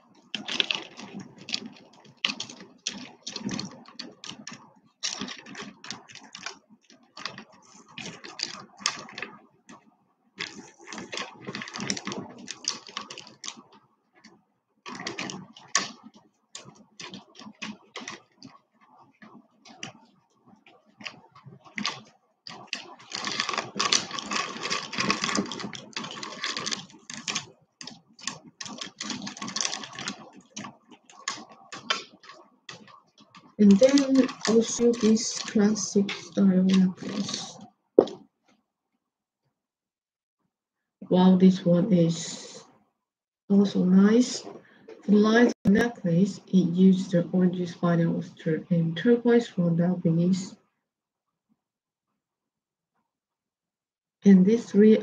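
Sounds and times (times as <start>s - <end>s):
beads clicking and rattling: 0.3s - 9.8s, 10.4s - 13.8s, 14.9s - 19.0s, 21.0s - 38.1s.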